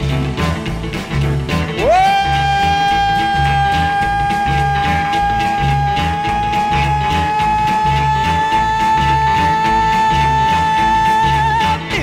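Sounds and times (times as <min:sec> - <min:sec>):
bass and drums shuffle: 0:00.0 - 0:12.0.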